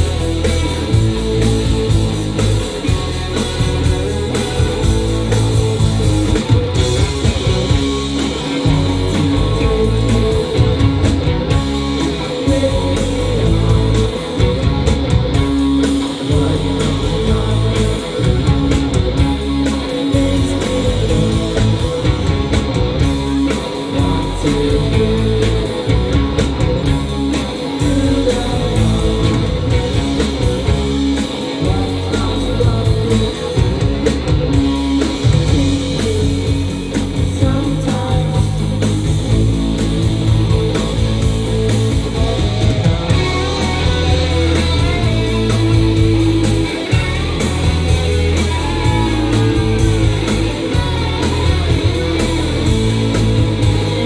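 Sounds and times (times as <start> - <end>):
bass guitar: 0.0 - 54.0
drum kit: 0.0 - 54.0
electric guitars: 0.0 - 54.0.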